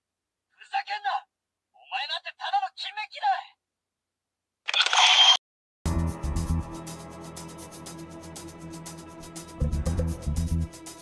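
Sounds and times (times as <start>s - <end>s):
music: 5.9s - 11.0s.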